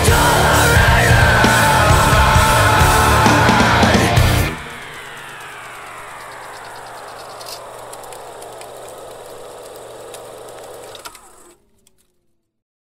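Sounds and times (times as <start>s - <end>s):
guitar amplifier hum and hiss: 0.0s - 11.6s
falling amplifier whine: 0.0s - 12.6s.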